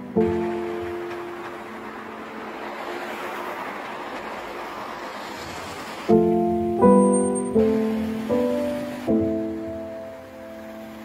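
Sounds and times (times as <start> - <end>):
piano note: 0.0 - 4.0, 6.0 - 11.0
cars passing on road: 0.0 - 11.0.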